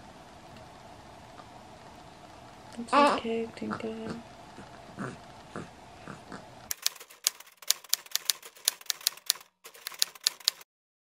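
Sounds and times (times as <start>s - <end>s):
typewriter key clacks: 6.7s - 10.6s.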